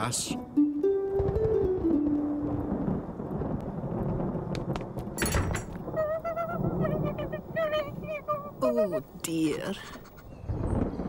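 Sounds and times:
held music notes: 0.0s - 3.0s
thunder rumbling: 1.2s - 11.0s.

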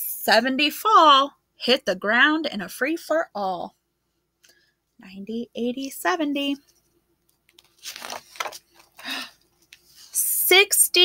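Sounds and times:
paper page rustling: 7.5s - 10.2s.

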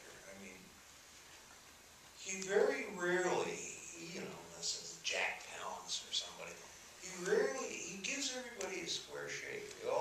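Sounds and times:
man talking over sound system: 2.2s - 10.0s.

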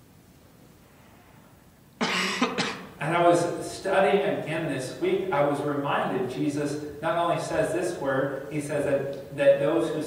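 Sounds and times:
man coughing: 2.0s - 2.9s.

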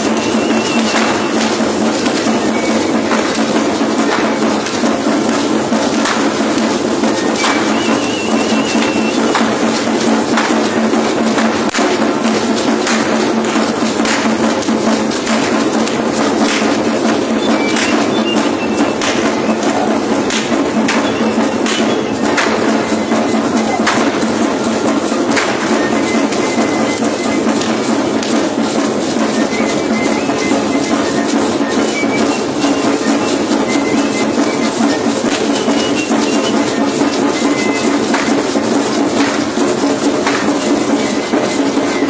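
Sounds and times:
dense rattling percussion: 0.0s - 42.0s.

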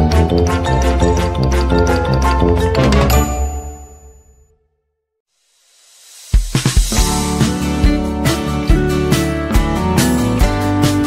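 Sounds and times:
background music: 0.0s - 4.5s, 6.5s - 11.0s
bright high ding: 3.1s - 4.6s.

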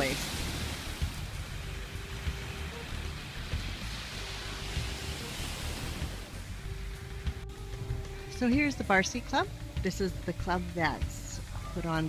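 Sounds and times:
small waves washing onto beach: 0.0s - 7.4s.

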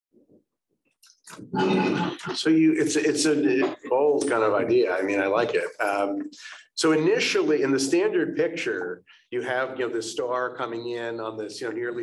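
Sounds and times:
man speaking loudly: 1.6s - 12.0s.

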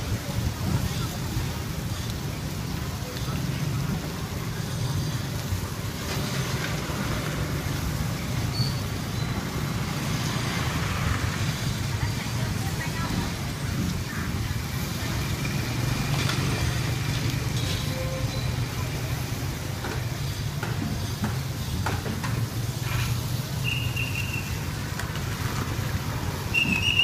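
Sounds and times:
low rumble of traffic: 0.0s - 27.0s.

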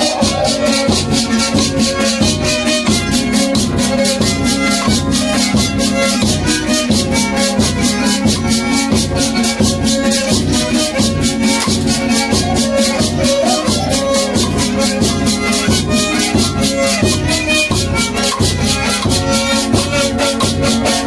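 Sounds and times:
violin and guitar dance tune: 0.0s - 21.0s.

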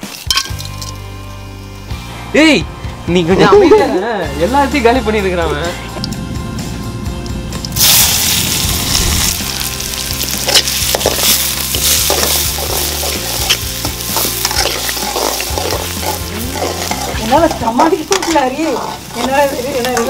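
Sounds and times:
onions sizzling in hot oil: 7.6s - 20.0s
metal spatula scraping pan: 10.4s - 20.0s.

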